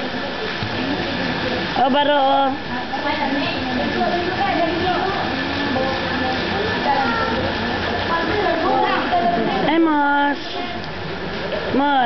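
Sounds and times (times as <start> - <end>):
pool water noise: 0.0 - 12.0.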